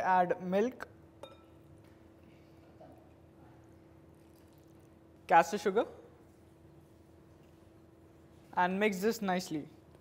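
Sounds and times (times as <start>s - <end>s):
faint room hum: 0.0s - 10.0s
milk pouring into bowl: 4.1s - 5.1s.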